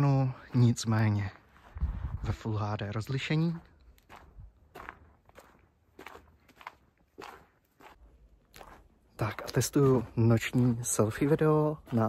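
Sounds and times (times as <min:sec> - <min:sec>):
footsteps on snow: 0:00.5 - 0:12.0.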